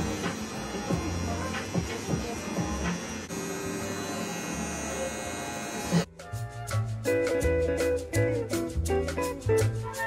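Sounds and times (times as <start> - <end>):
tattoo machine buzzing: 0.0 - 6.1
background music: 6.0 - 10.0.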